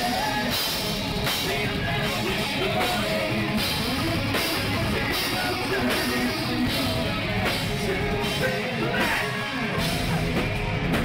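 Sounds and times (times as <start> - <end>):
distorted electric guitars: 0.0 - 11.0
drum kit with cymbals: 0.0 - 11.0.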